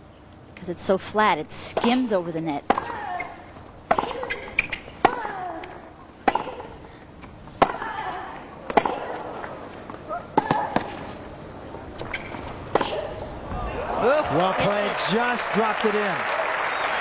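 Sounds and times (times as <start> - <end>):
racket striking tennis ball: 1.7 - 6.8, 7.5 - 8.1, 8.7 - 9.3, 10.3 - 11.1, 12.0 - 13.3.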